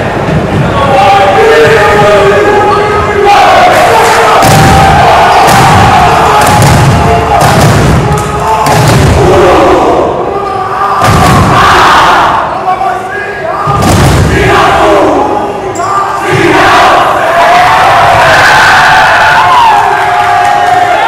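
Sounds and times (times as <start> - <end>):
boys shouting a chant: 0.8 - 21.0.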